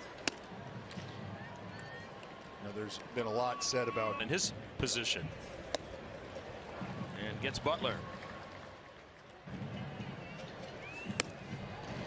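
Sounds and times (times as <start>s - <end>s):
bat cracking ball: 0.0s - 1.1s, 11.0s - 11.5s
crowd murmur: 4.6s - 12.0s.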